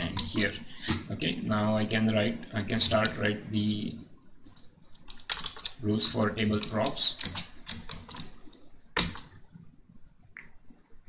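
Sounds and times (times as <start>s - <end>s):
computer keyboard keystrokes: 4.5s - 5.8s, 6.6s - 8.4s, 9.0s - 9.3s.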